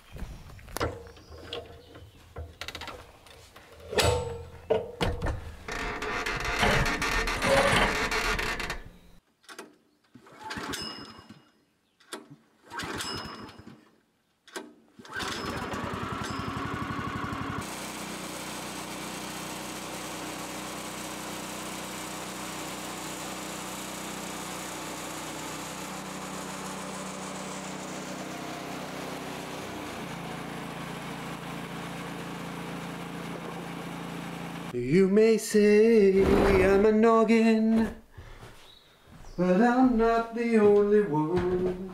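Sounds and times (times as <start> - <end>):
sawmill engine running: 15.1 - 34.8.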